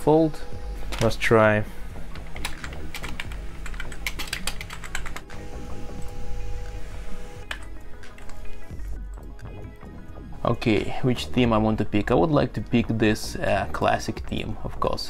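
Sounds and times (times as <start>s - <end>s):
typing on a computer keyboard: 2.4s - 5.3s.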